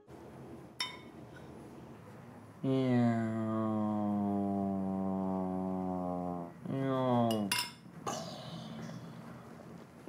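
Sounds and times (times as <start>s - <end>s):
man humming low: 2.6s - 6.7s.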